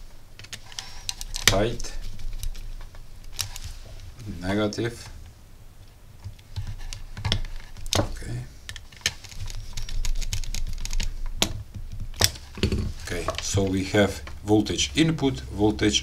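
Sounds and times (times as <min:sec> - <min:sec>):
screwdriver clicking and scraping: 0:00.4 - 0:02.7, 0:08.7 - 0:11.6.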